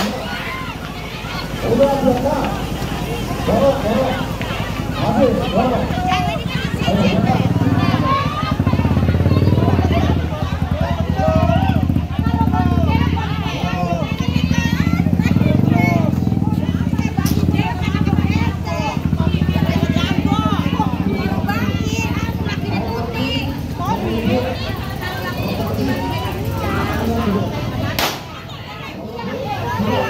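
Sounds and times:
crowd chatter and calls: 0.0 - 30.0
motorcycle engine running: 0.0 - 30.0.

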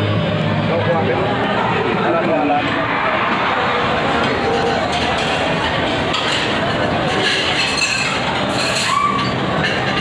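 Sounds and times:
many people talking: 0.0 - 10.0
dishes and cutlery clinking: 4.2 - 10.0.

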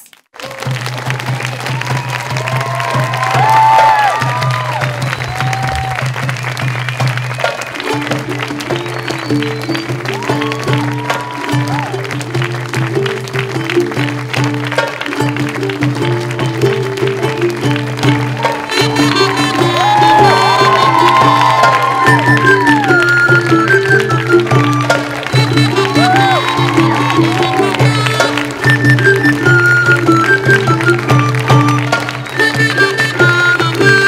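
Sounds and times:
audience applauding: 0.0 - 34.0
whoops: 0.4 - 6.6, 8.7 - 12.2, 18.4 - 33.0
plucked string melody: 7.8 - 34.0.

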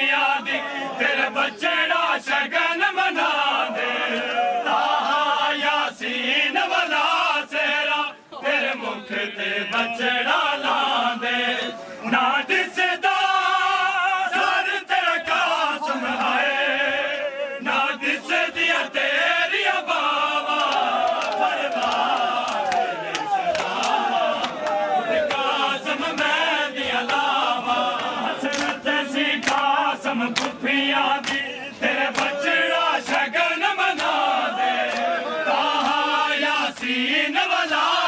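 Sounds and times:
men chanting a lament: 0.0 - 38.0
hands slapping bare chests: 20.6 - 25.5, 28.0 - 28.8, 29.4 - 29.7, 30.3 - 30.6, 31.2 - 31.4, 32.1 - 32.4, 33.9 - 34.2.

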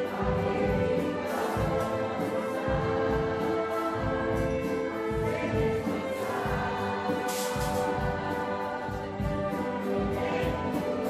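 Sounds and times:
choir singing: 0.0 - 11.0
orchestra playing: 0.0 - 11.0.

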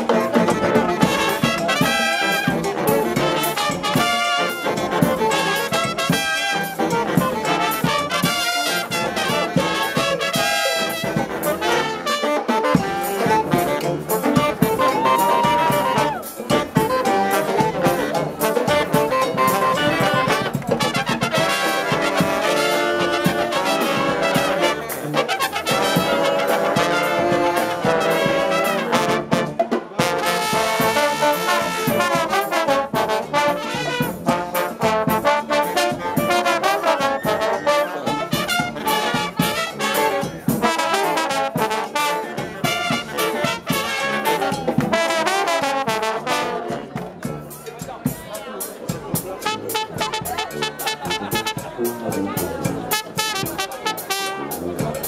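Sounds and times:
brass band playing: 0.0 - 55.0
steady drum beat: 0.0 - 55.0.

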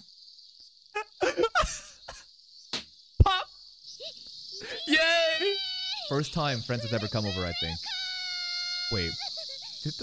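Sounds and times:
cicadas chirping: 0.0 - 10.0.

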